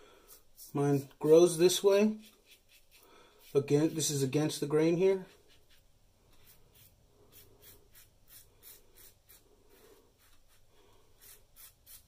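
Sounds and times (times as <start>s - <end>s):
razor scraping stubble: 11.2s - 12.0s.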